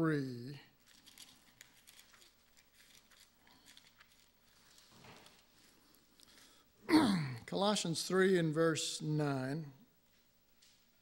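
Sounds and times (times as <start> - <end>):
pages being turned by hand: 0.8 - 6.0.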